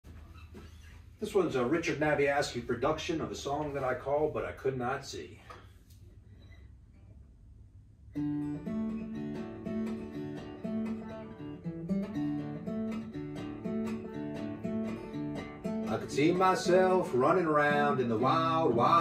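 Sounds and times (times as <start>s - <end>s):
acoustic guitar picking: 8.1s - 19.0s
person singing: 15.9s - 19.0s.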